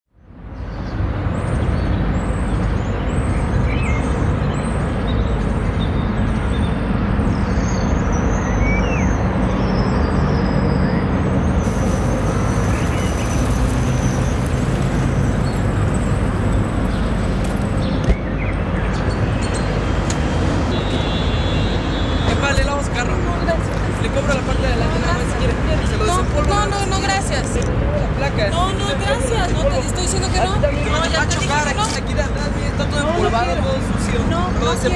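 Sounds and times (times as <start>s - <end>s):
traffic: 0.1s - 34.9s
urban background rumble: 0.1s - 34.9s.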